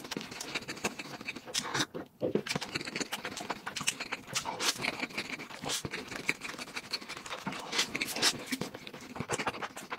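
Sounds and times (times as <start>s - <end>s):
wet chewing: 0.0s - 9.9s.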